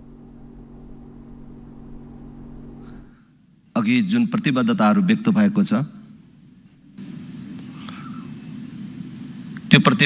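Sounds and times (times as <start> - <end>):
low hum of held tones: 0.0 - 10.0.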